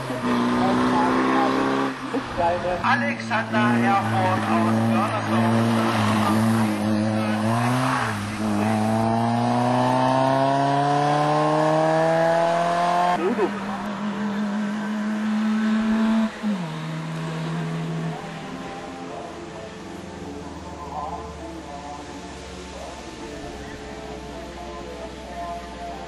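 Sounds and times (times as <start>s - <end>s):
race car engine accelerating: 0.0s - 23.3s.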